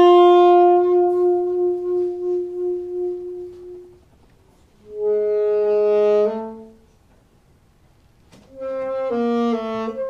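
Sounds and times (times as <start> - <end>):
saxophone sustained notes: 0.0 - 4.1, 4.8 - 7.0, 8.5 - 10.0.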